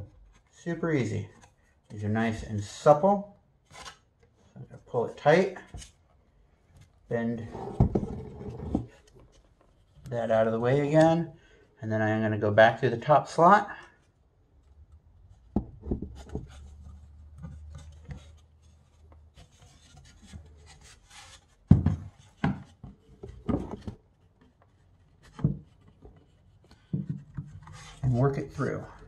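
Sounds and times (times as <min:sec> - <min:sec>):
wood rubbing and scraping on wood: 0:15.3 - 0:29.0.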